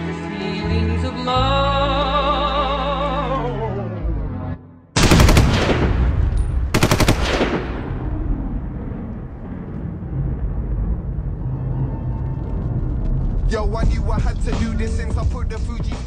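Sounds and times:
machine-gun fire: 0:05.0 - 0:08.7.

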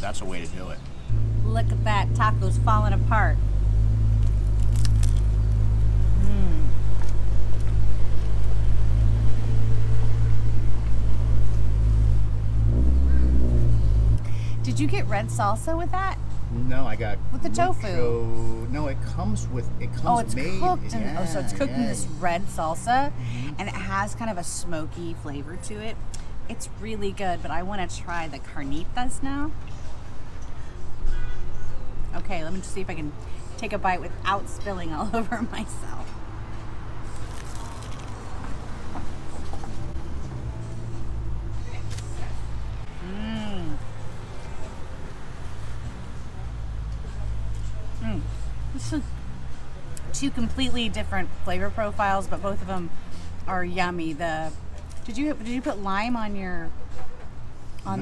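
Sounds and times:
taco shell crunching: 0:04.2 - 0:05.6, 0:37.0 - 0:38.4.

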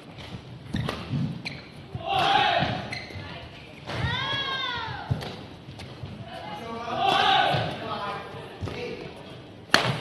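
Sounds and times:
racket hitting shuttlecock: 0:09.7 - 0:10.0.

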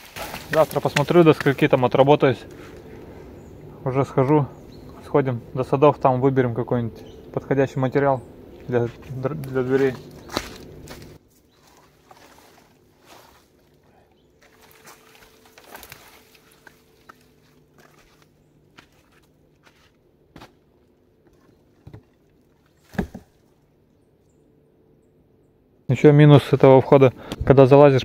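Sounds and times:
logs cracking underfoot: 0:00.0 - 0:03.1, 0:08.6 - 0:13.8, 0:14.4 - 0:23.5
footsteps on pine needles and twigs: 0:00.0 - 0:03.4, 0:08.5 - 0:21.6.

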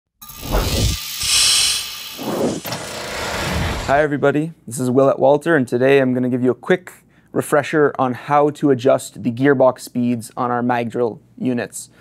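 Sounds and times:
hiss: 0:00.4 - 0:02.7
whoosh: 0:00.4 - 0:04.0.

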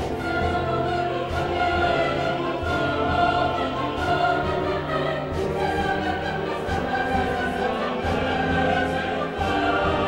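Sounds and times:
opera choir singing: 0:00.0 - 0:10.0.

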